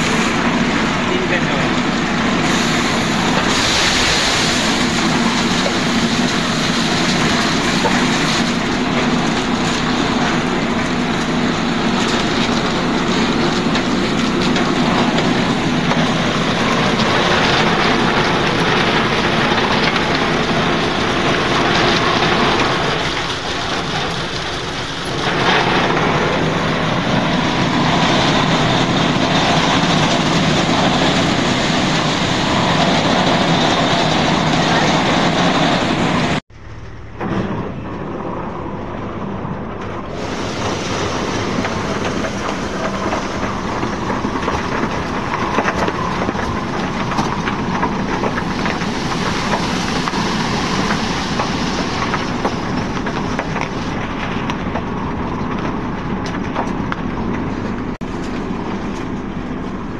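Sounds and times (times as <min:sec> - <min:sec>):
plant machinery running: 0:00.0 - 0:59.9.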